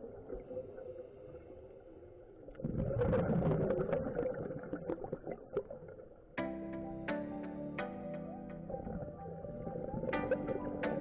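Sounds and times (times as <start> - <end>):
bubbles rushing underwater: 2.5 - 6.1.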